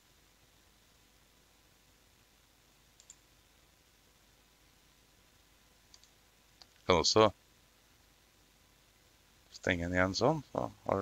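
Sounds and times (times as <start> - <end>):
computer mouse double click: 3.0 - 3.2, 5.9 - 6.7.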